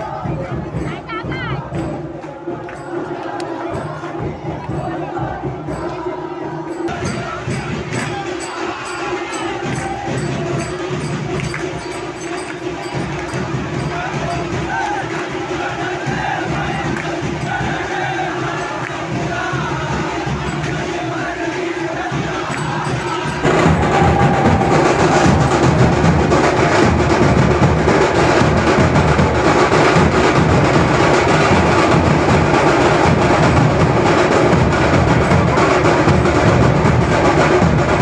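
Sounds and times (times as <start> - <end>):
dhol drums beating: 0.0 - 38.0
men chanting together: 0.0 - 38.0.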